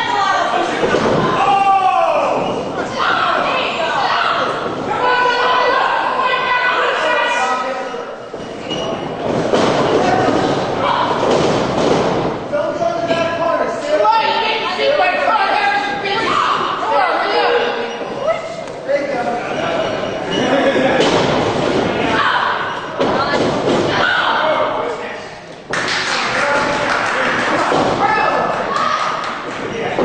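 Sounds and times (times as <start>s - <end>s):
crowd shouting and cheering: 0.0s - 8.1s, 25.9s - 30.0s
voices shouting in a large hall: 0.0s - 30.0s.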